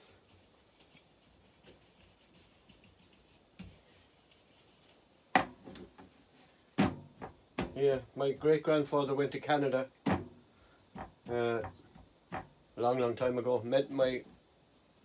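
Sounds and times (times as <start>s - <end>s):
hands flattening bread dough: 0.0s - 13.6s.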